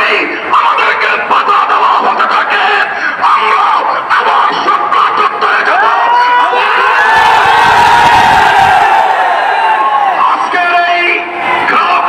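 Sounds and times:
large crowd shouting: 4.8 - 12.0.

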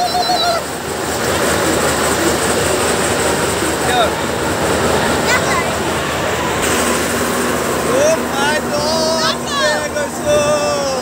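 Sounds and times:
fairground ride machinery running: 0.0 - 11.0
voices of fair crowd: 0.0 - 11.0.

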